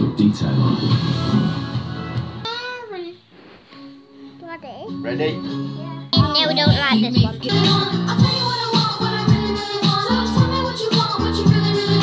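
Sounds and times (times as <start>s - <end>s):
music with singing: 0.0s - 12.0s.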